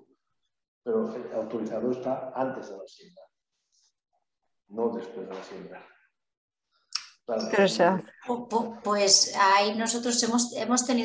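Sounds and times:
woman speaking: 7.4s - 11.0s.

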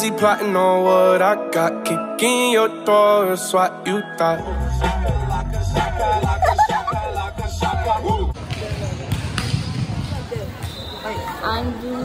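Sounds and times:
song: 0.0s - 8.4s
volleyballs thudding on floor: 8.4s - 10.8s.

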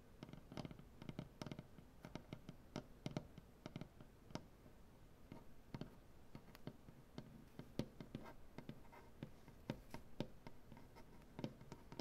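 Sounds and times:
fingernails tapping on wood: 5.3s - 12.0s
light scratching on wood: 5.3s - 12.0s.

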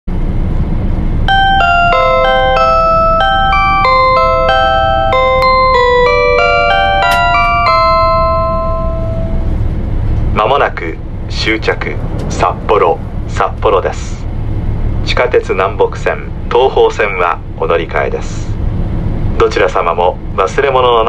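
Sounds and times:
train running rumble: 0.1s - 21.0s
bell-like chime melody: 1.3s - 9.6s.

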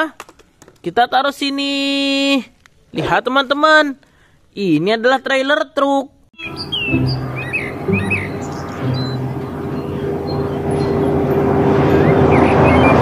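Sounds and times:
birds chirping: 6.4s - 13.0s
road noise: 6.4s - 13.0s
truck engine drone: 6.4s - 13.0s.

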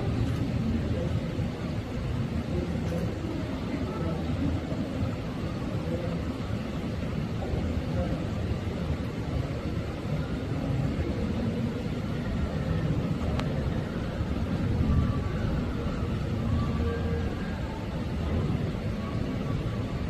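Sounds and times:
faint distant voices: 0.0s - 20.0s.

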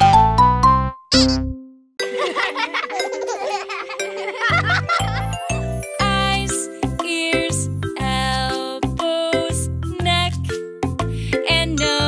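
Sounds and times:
children's song music: 0.0s - 12.0s
tinkly chiming flourish: 2.0s - 7.0s.

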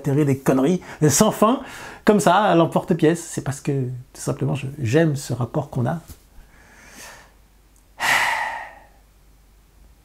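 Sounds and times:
man sighing: 8.0s - 9.0s.

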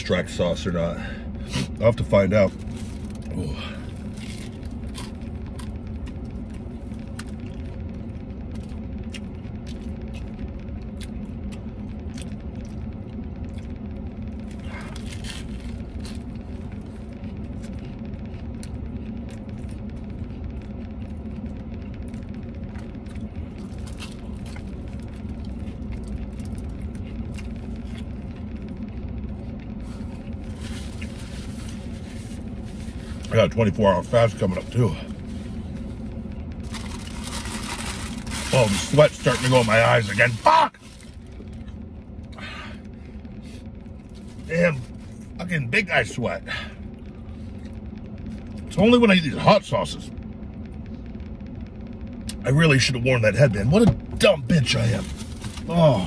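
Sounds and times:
idling vehicle hum: 0.0s - 56.0s.

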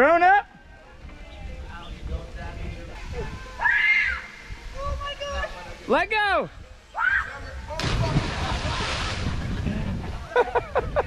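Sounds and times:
loud splash into water: 7.8s - 9.4s.

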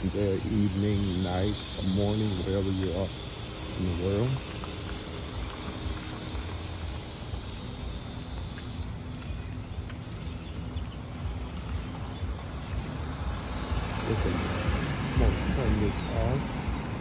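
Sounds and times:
distant traffic: 0.0s - 17.0s
high steady hiss: 0.0s - 17.0s.

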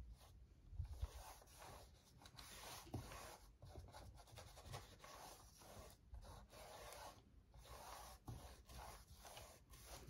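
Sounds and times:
paintbrush swishing on paper: 0.0s - 10.0s.

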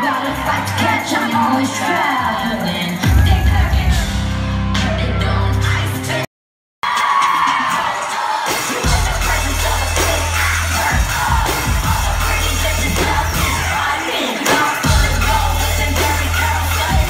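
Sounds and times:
crowd cheering and screaming: 0.0s - 4.0s, 6.8s - 17.0s
heavy bass-driven pop music: 0.0s - 17.0s.

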